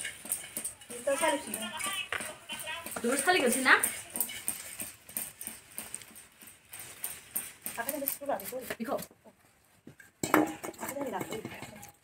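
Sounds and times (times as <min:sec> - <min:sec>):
rice grains pattering on bamboo tray: 0:00.0 - 0:10.1.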